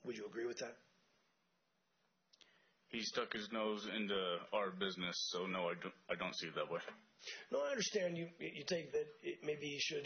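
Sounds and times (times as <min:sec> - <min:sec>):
man speaking: 0:00.0 - 0:01.0, 0:02.9 - 0:10.0.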